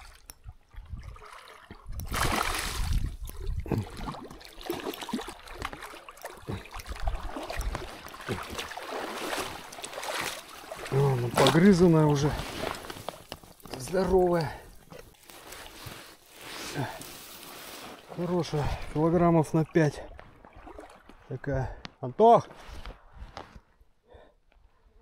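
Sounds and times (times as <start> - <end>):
water splashing and sloshing: 0.0 - 23.7.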